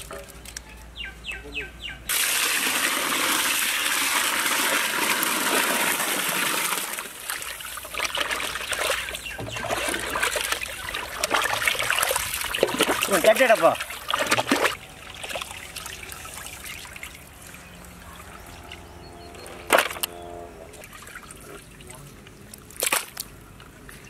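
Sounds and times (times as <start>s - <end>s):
water pouring into metal pot: 2.1s - 7.4s
water splashing and sloshing: 2.1s - 24.0s.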